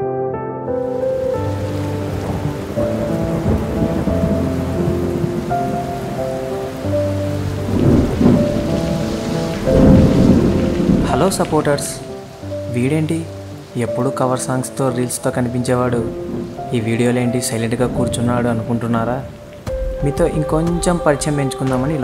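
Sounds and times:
soft background music: 0.0s - 22.0s
heavy rain: 0.7s - 22.0s
thunder rumbles: 1.1s - 12.8s, 15.4s - 22.0s.

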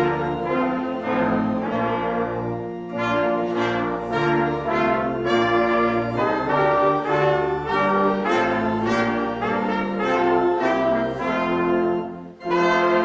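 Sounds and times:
brass ensemble playing chords: 0.0s - 13.0s.

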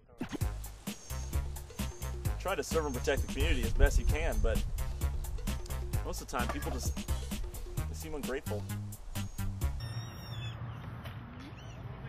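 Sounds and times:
faint bird chirps: 0.2s - 3.1s, 9.1s - 12.0s.

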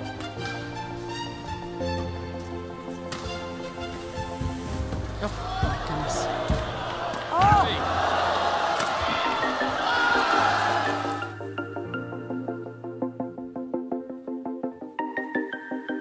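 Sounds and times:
background music: 0.0s - 16.0s
racket hitting shuttlecock: 3.1s - 3.4s.

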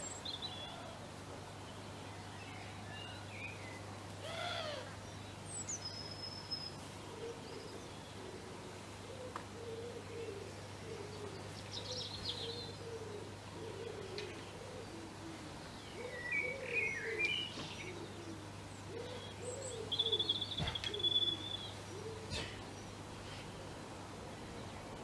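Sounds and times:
songbirds chirping: 0.0s - 25.0s
pigeons cooing: 7.0s - 23.8s.

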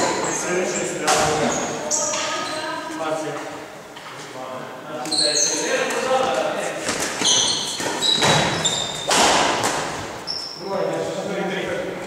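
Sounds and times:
sports shoes squeaking on floor: 0.0s - 3.0s, 5.0s - 10.7s
players' voices: 0.0s - 8.6s, 9.2s - 12.0s
racket striking shuttlecock: 7.8s - 10.0s.

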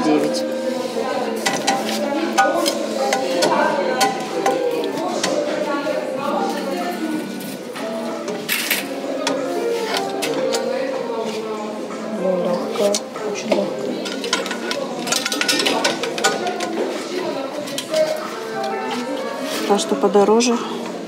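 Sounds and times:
background music: 0.0s - 21.0s
frying pans clacking together: 1.4s - 4.6s, 14.0s - 17.0s.

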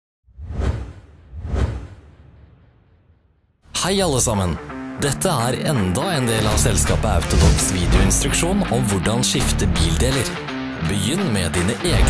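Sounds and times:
whoosh sound effects: 0.4s - 3.0s, 7.2s - 8.1s
deep bass rumble: 6.5s - 9.0s.

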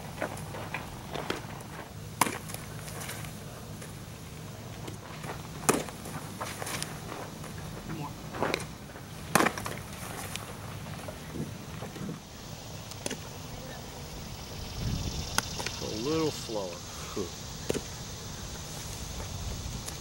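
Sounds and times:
baseball popping into mitt: 5.6s - 6.0s.

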